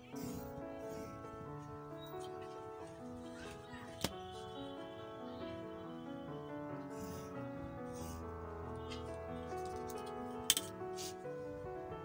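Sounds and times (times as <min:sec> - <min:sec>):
slow piano melody: 0:00.0 - 0:12.0
ruler scraping paper: 0:08.0 - 0:08.2.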